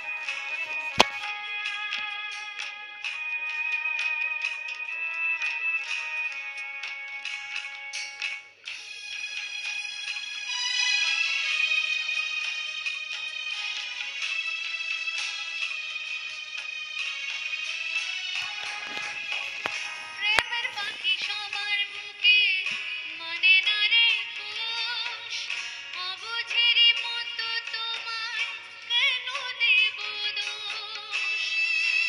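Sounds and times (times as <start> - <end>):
instrumental accompaniment: 0.0 - 11.5, 18.0 - 25.8
woman singing into microphone: 19.4 - 31.5.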